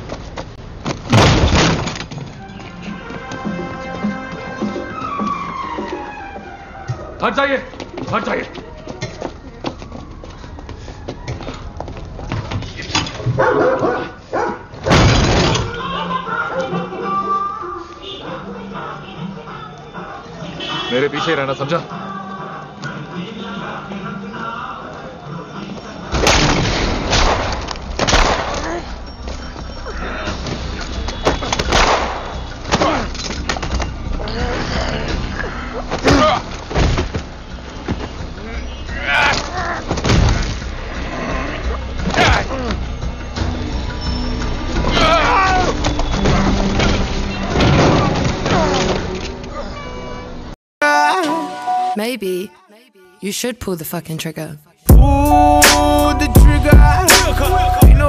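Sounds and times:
dog barking: 13.3s - 14.7s.

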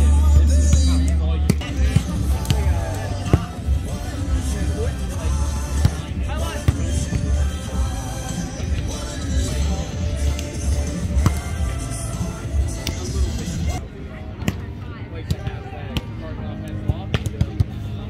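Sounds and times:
background music: 0.0s - 18.0s
people talking: 0.0s - 18.0s.

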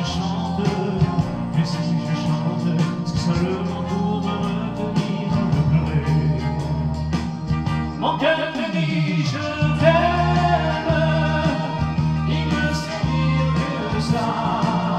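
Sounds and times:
man singing into microphone: 0.0s - 6.9s, 8.0s - 14.9s
instrumental backing music: 0.0s - 14.9s.

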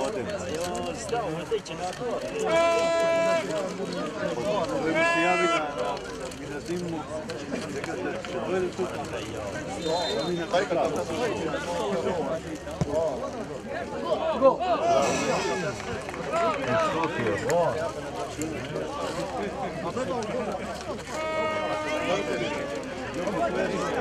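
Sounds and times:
crowd shouting outdoors: 2.2s - 6.0s, 13.8s - 17.8s, 20.9s - 24.0s.

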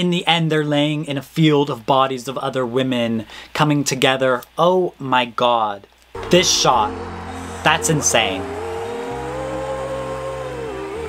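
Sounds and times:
low synth chord: 6.2s - 11.0s
woman singing a high note: 6.2s - 11.0s.

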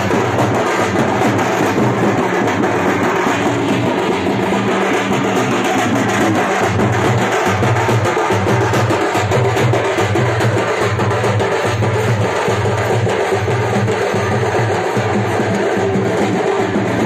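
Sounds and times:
drums beaten with sticks: 0.0s - 17.0s.

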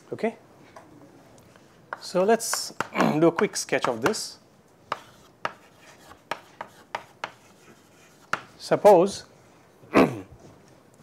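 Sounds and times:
chalk tapping on blackboard: 1.9s - 4.3s, 4.9s - 8.6s
chalk scratching on blackboard: 3.4s - 4.3s, 4.9s - 8.7s.

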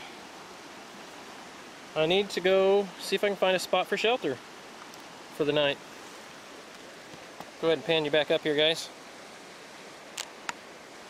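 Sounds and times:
river flowing: 0.0s - 11.0s.

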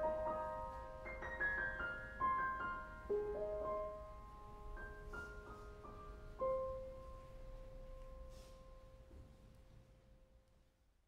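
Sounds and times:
solo piano notes: 0.0s - 9.1s.

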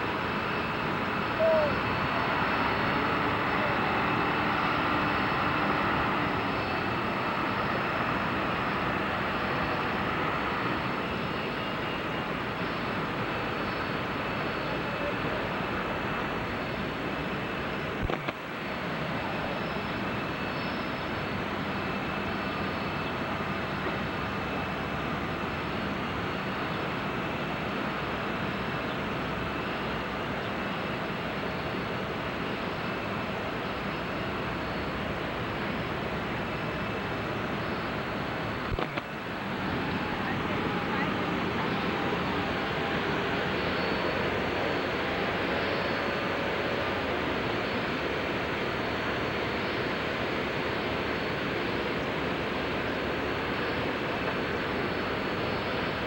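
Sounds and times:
faint high whine: 0.0s - 56.0s.

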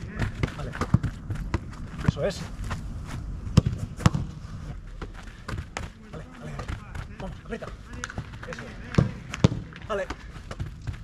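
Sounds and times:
football being kicked: 0.0s - 2.2s, 3.5s - 4.4s, 5.0s - 11.0s.

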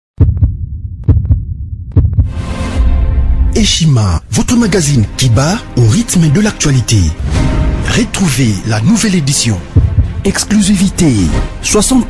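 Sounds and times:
deep bass thumps: 0.2s - 3.5s, 9.7s - 10.3s.

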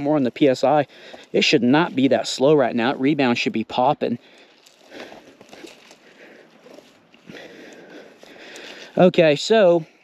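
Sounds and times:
bike suspension fork rustling: 0.0s - 10.0s.

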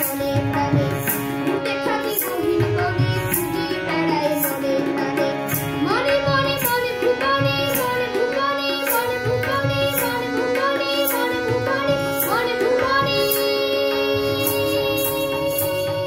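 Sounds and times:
boy singing folk song: 0.0s - 16.0s
tabla drumming: 0.0s - 16.0s.

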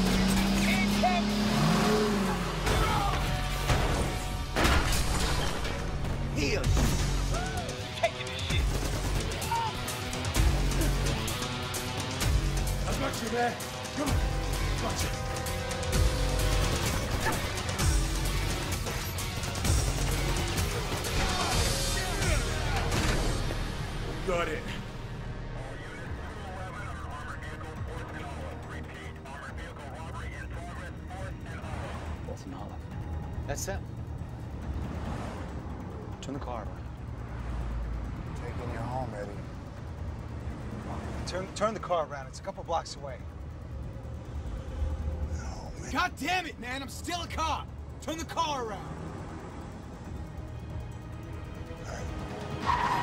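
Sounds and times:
action film music score: 0.0s - 53.0s
car engine rumble: 0.0s - 53.0s
road noise: 0.0s - 53.0s
voices shouting: 2.0s - 3.5s, 7.2s - 11.2s.

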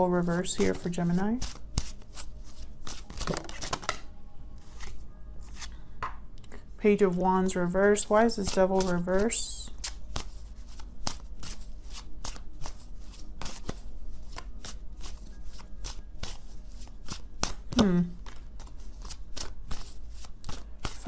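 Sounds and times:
cards being shuffled: 0.2s - 4.0s, 4.6s - 5.8s, 8.1s - 21.0s.

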